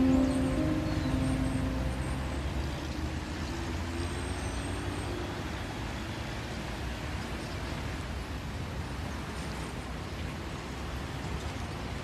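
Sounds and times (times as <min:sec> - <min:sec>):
music: 0:00.0 - 0:02.4
cars driving past: 0:00.0 - 0:12.0.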